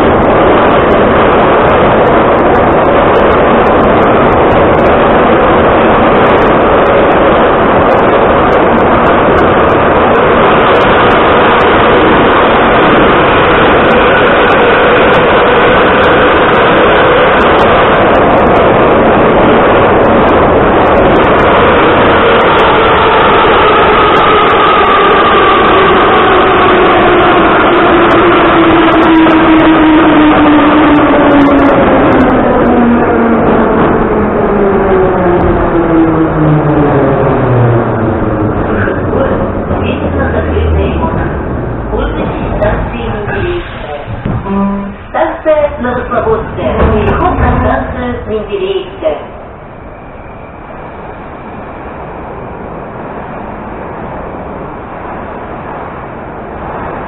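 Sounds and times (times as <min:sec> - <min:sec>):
metro car rumble and rattle: 0:00.0 - 0:57.0.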